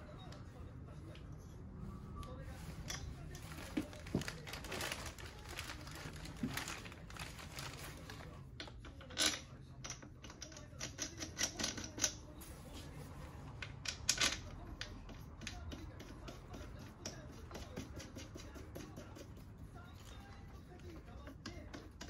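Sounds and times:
plastic packaging crinkling: 0:03.4 - 0:08.4.

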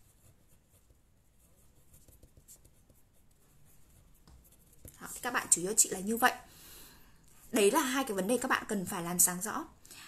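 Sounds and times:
pen scratching on paper: 0:00.0 - 0:05.5.

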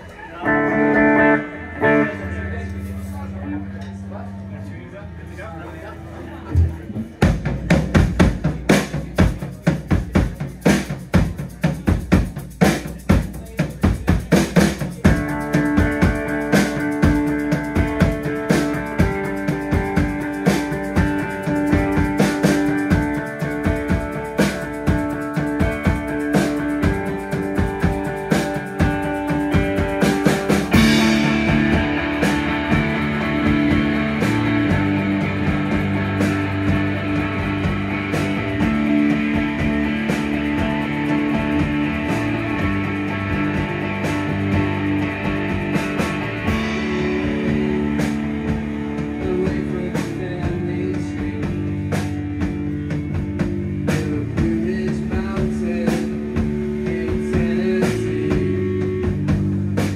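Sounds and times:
electric guitars and bass: 0:00.0 - 0:59.9
sustained keyboard chords: 0:00.4 - 0:07.2
drum kit beat: 0:06.4 - 0:59.9.

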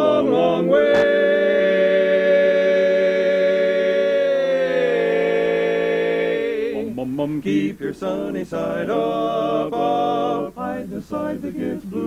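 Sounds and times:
men singing a cappella chord: 0:00.0 - 0:12.0.

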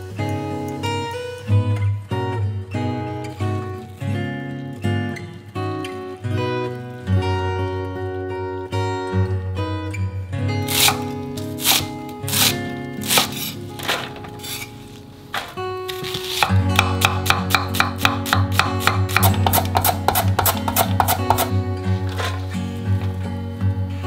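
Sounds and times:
acoustic guitar music: 0:00.0 - 0:24.0
knife chopping on wooden board: 0:15.9 - 0:21.5.

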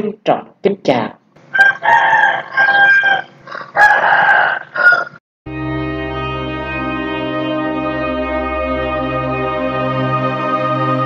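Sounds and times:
sustained music chords: 0:05.5 - 0:11.0.

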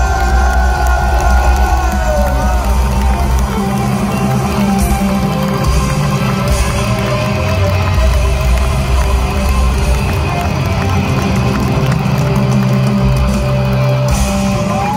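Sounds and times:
rock band playing live: 0:00.0 - 0:14.9.

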